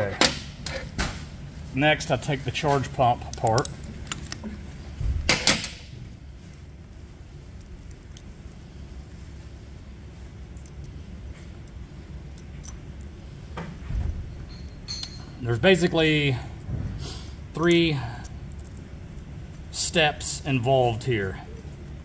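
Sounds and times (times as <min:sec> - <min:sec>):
low steady hum: 0:00.0 - 0:22.0
light clicks of parts handled: 0:02.6 - 0:04.6.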